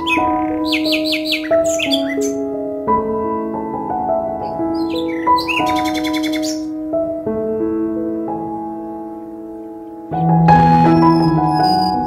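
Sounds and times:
bird chirping trill: 0:00.0 - 0:02.5, 0:04.4 - 0:06.8, 0:10.1 - 0:12.0
sustained background music: 0:00.0 - 0:12.0.

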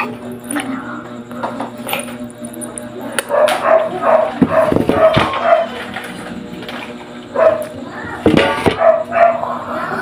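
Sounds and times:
dog barking: 0:03.3 - 0:05.8, 0:07.3 - 0:07.8, 0:08.7 - 0:09.5.

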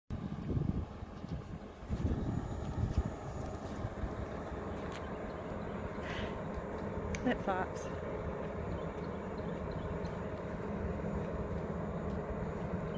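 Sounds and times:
diesel engine rumbling: 0:00.1 - 0:12.9.

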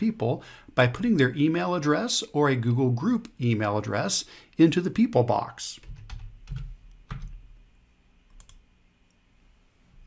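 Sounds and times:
low room noise: 0:00.0 - 0:10.0
keyboard and mouse clicks: 0:05.8 - 0:07.4, 0:08.3 - 0:09.2.

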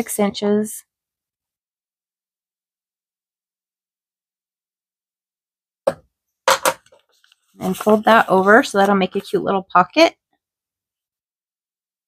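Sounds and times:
knocks on plastic board: 0:05.9 - 0:06.9.

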